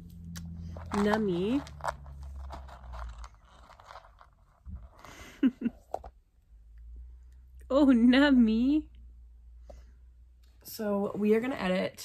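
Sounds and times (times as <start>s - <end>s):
child chewing and crunching: 0.0s - 5.0s.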